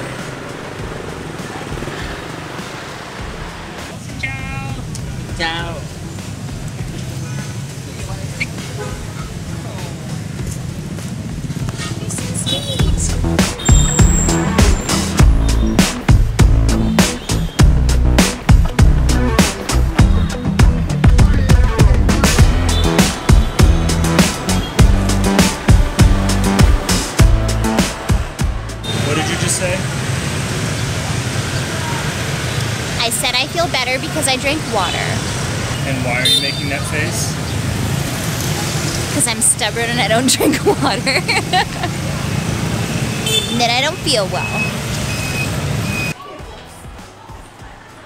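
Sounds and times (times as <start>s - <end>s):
motorbike and car traffic: 0.0s - 48.0s
people talking: 11.7s - 13.2s, 33.0s - 35.2s, 35.9s - 37.4s, 38.6s - 42.0s, 43.5s - 44.7s.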